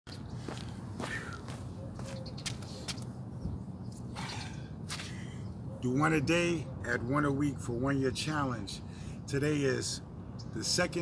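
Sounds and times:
footsteps of sneakers on asphalt: 0.1 - 3.1.

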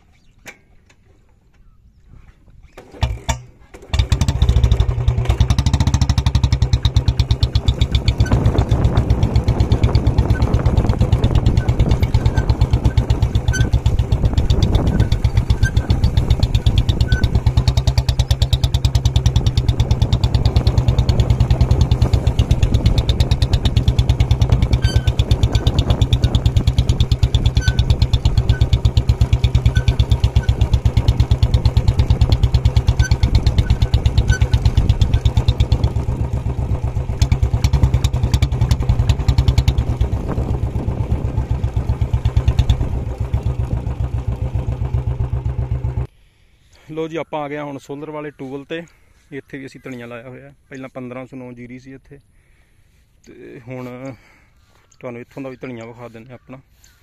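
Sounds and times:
motorcycle engine running: 3.0 - 46.1.

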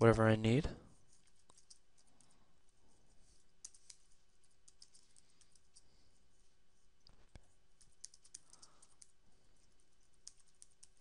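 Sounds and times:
computer keyboard keystrokes: 4.6 - 5.8, 7.8 - 9.2.

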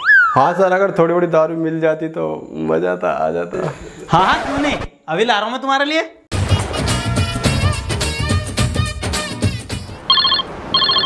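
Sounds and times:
mobile phone ringing: 10.1 - 11.0.

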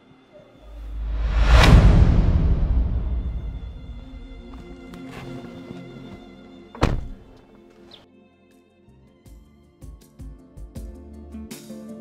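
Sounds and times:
background film music: 0.0 - 12.0
car door shutting: 6.8 - 7.4.

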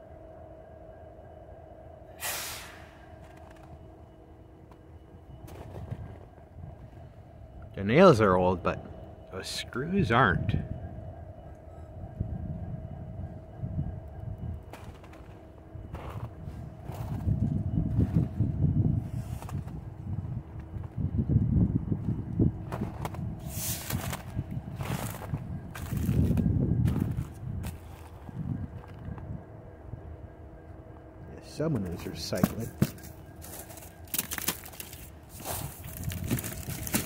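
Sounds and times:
faint steady hum: 0.0 - 37.0
low microphone rumble: 9.9 - 30.1
footsteps crunching through snow: 14.7 - 17.3, 22.7 - 28.9, 32.4 - 37.0.

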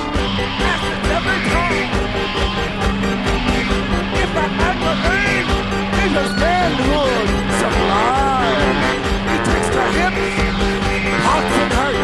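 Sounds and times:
drums: 0.0 - 12.0
punk rock band playing: 0.0 - 12.0
person singing: 4.2 - 10.1.

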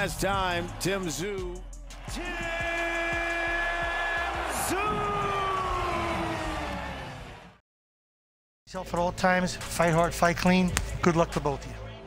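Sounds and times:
crowd cheering: 0.0 - 7.6.

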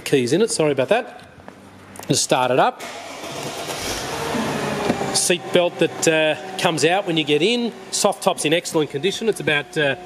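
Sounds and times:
car engine starting: 2.7 - 10.0.

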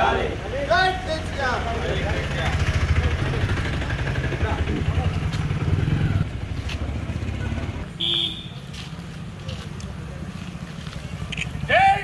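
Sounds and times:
loud high drawn-out shout: 11.7 - 12.0.

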